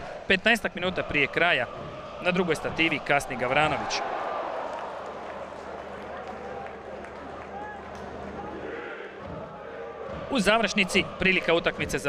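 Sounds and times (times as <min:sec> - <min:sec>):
murmur of spectators: 0:00.0 - 0:12.0
distant shouts: 0:00.8 - 0:12.0.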